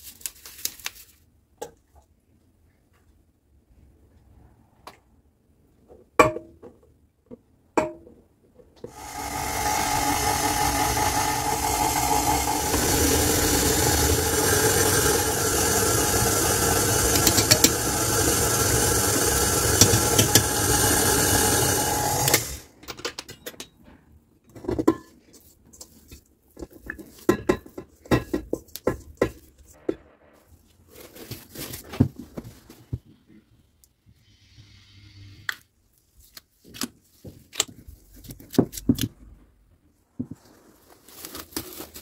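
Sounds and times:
stand mixer running: 8.9 - 22.6.

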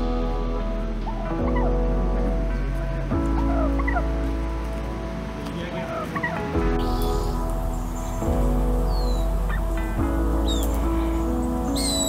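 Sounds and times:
background music with held chords: 0.0 - 12.0
wild turkey calling: 1.1 - 1.9, 3.3 - 4.7, 5.8 - 12.0.

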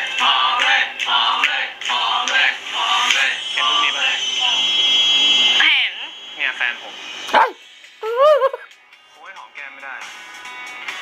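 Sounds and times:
steady high tone: 2.7 - 8.2.

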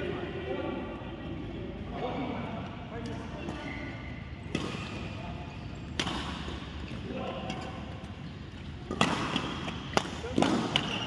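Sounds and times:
racket hitting shuttlecock: 4.5 - 5.1, 5.9 - 7.7, 8.8 - 11.0.

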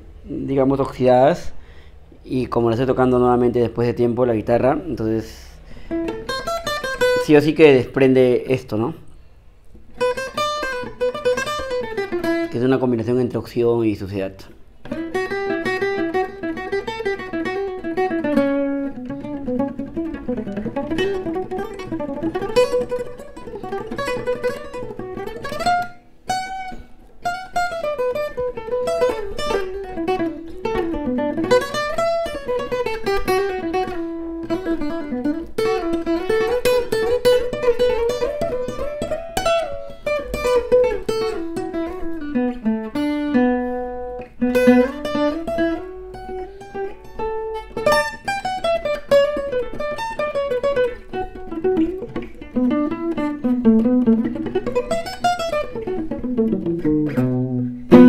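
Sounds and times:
fingerstyle acoustic guitar: 5.2 - 7.3, 9.1 - 12.6, 14.4 - 58.0.

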